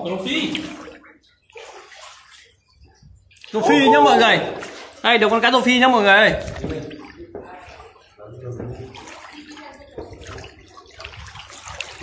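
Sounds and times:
river water splashing: 0:00.5 - 0:02.7, 0:03.4 - 0:05.4, 0:08.9 - 0:12.0.

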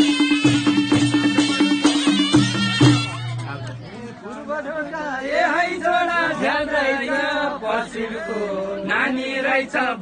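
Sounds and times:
group of voices singing: 0:05.1 - 0:10.0.

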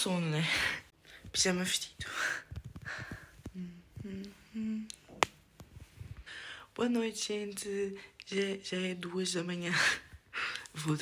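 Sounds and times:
person humming notes: 0:03.5 - 0:05.0.

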